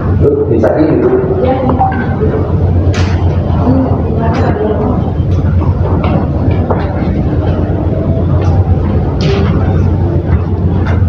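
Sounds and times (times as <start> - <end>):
loud low hum: 0.0 - 11.0.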